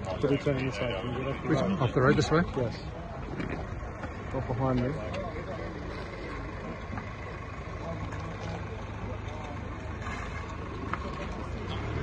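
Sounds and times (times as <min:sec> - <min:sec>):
crowd voices: 0:00.0 - 0:12.0
van engine running: 0:00.0 - 0:12.0.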